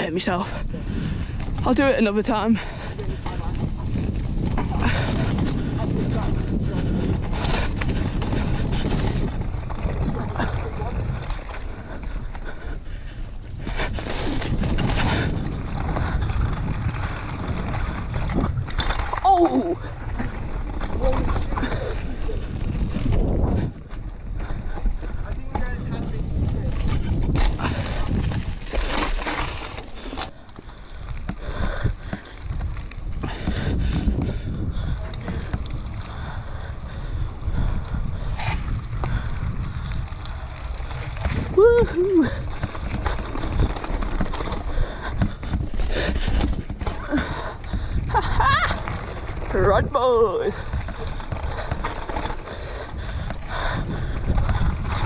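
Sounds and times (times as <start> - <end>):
bike tyres rumbling over dirt: 0.0 - 55.0
wind buffeting microphone: 0.0 - 55.0.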